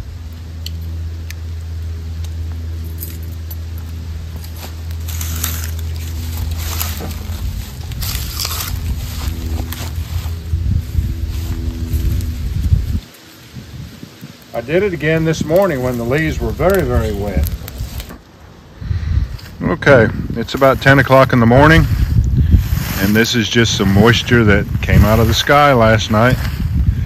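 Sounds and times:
steady low rumble: 0:00.0 - 0:27.0.

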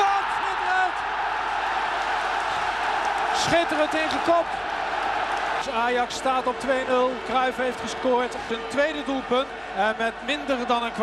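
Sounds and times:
stadium crowd cheering: 0:00.0 - 0:11.0
commentator speaking: 0:05.6 - 0:11.0.

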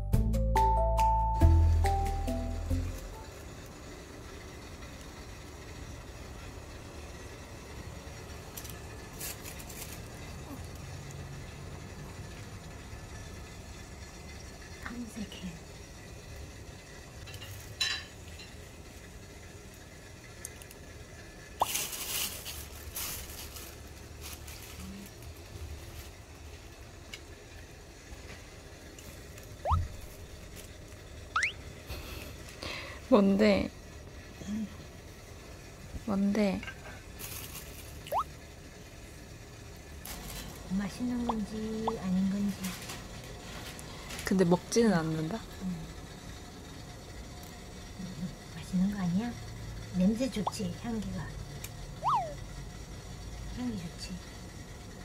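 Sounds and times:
dishwasher running: 0:01.4 - 0:34.2, 0:34.9 - 0:52.5
plastic bag crinkling: 0:08.6 - 0:10.4, 0:21.6 - 0:26.2, 0:37.2 - 0:38.2
faint rising squeaks: 0:52.0 - 0:52.4.

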